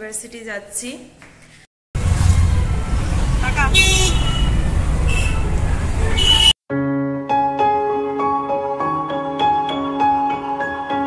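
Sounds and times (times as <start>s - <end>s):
auto-rickshaw engine rumble: 2.0s - 6.5s
vehicle horn honking: 3.5s - 6.6s.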